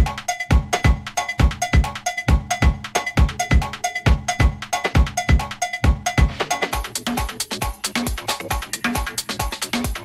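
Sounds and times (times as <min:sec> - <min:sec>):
electronic dance music: 0:00.0 - 0:10.0
kick drum: 0:00.0 - 0:10.0
ticking hi-hats: 0:00.0 - 0:10.0.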